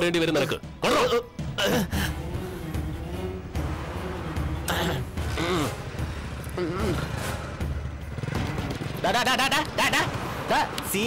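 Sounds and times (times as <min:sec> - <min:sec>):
motorcycle engine idling: 0:05.1 - 0:09.4.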